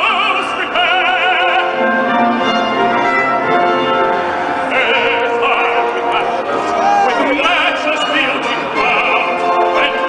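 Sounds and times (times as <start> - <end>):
orchestra brass chords: 0.6 - 10.0.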